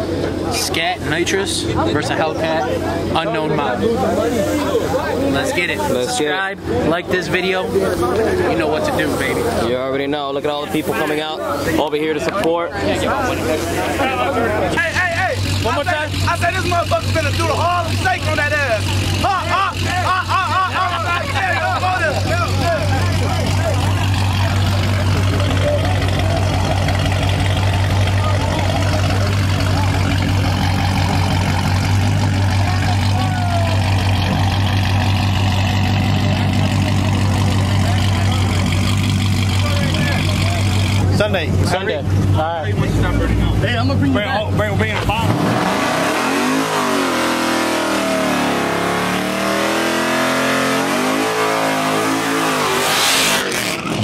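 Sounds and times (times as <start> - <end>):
car engine idling and revving: 0.0 - 54.0
tyres spinning hiss: 7.4 - 9.8.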